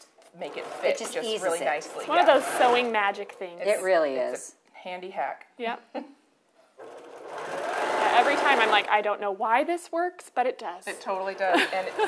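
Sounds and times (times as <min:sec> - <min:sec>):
sewing machine stitching: 0:00.4 - 0:03.5, 0:06.8 - 0:09.0.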